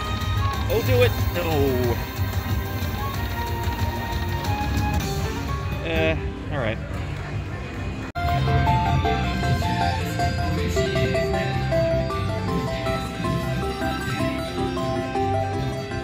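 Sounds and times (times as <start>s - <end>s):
slot machine game music: 0.0s - 6.4s, 8.2s - 16.0s.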